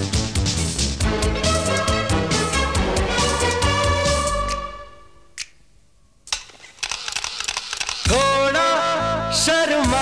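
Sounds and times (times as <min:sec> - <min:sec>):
film song band: 0:00.0 - 0:05.2
rapid crackly clicks: 0:06.3 - 0:08.2.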